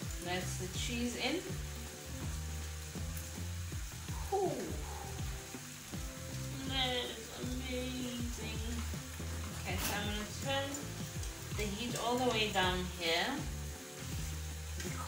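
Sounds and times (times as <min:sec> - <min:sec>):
background music with a voice: 0:00.0 - 0:15.0
meat and peppers sizzling in a pan: 0:00.0 - 0:15.0
wooden spoon stirring in a pot: 0:08.3 - 0:12.6.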